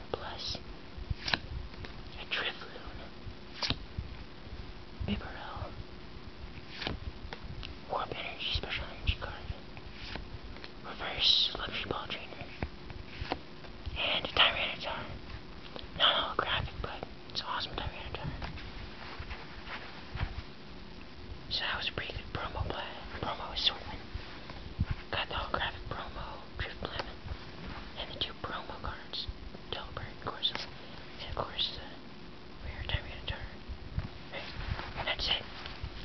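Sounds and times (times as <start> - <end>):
person whispering: 0.1 - 0.6, 2.1 - 3.1, 5.0 - 5.8, 7.9 - 9.6, 10.8 - 12.6, 13.9 - 15.2, 15.8 - 18.5, 21.5 - 24.1, 25.1 - 27.2, 27.9 - 32.0, 32.6 - 33.6, 34.3 - 35.6.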